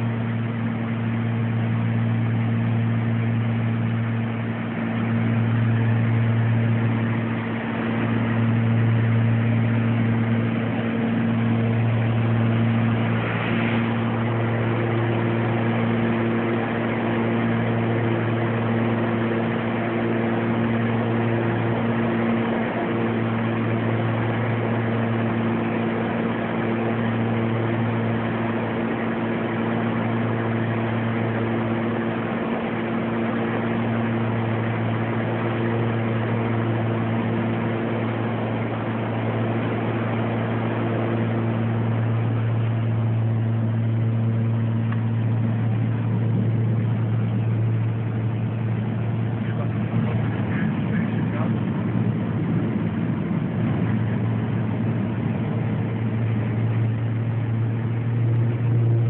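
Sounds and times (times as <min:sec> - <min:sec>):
aircraft cabin engine drone: 0:00.0 - 0:59.0.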